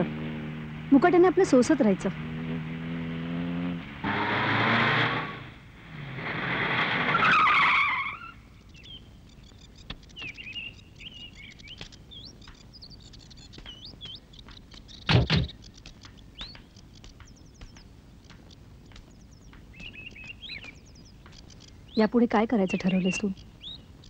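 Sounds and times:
birds chirping: 0.0 - 4.1, 7.2 - 24.0
car engine running: 0.0 - 7.1
tyres screeching: 4.0 - 8.4.

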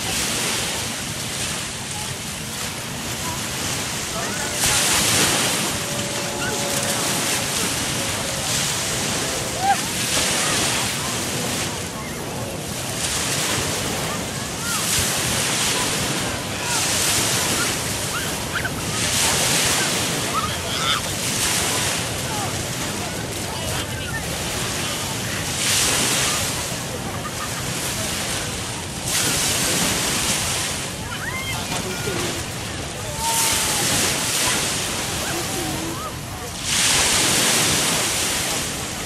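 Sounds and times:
waves breaking on beach: 0.0 - 39.0.

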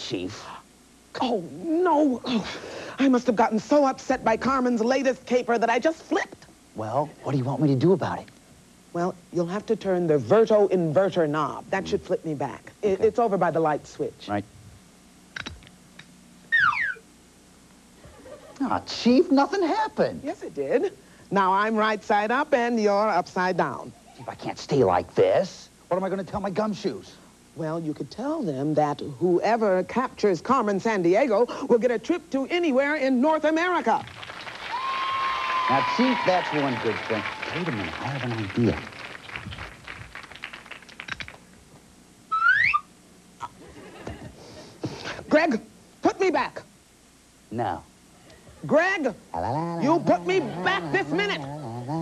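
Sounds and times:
rising whistle-like tone: 42.3 - 42.9.

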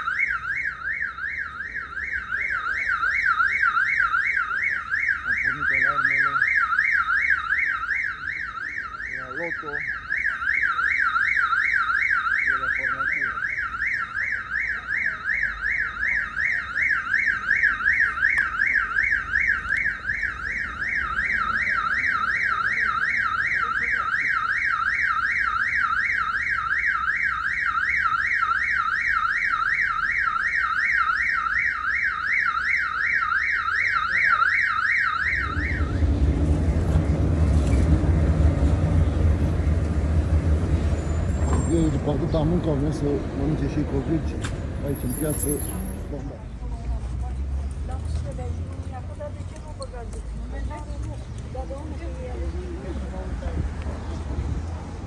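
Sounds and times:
warbling electronic alarm siren: 0.0 - 36.5.

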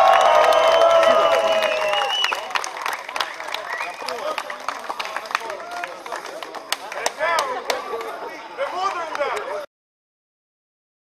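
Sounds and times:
sharp hand claps: 0.0 - 9.5
crowd talking and calling out: 0.9 - 9.7.

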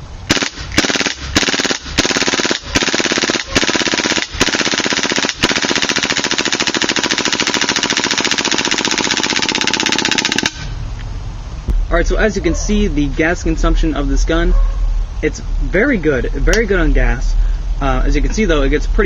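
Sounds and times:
airsoft gun bolt rapid clicks: 0.3 - 10.7.

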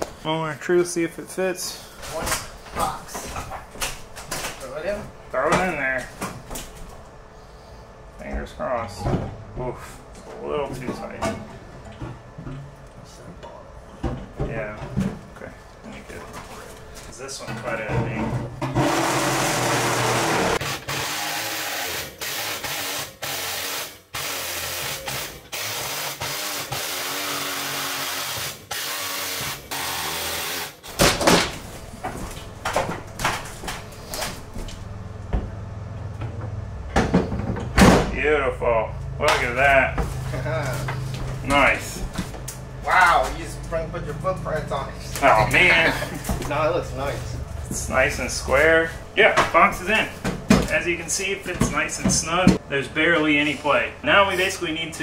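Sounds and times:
handheld power tool on metal: 18.7 - 30.8.

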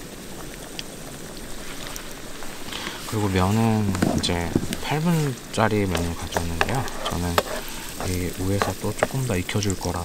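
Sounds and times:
garlic sizzling in oil: 0.0 - 10.0
small pops: 1.6 - 9.4.

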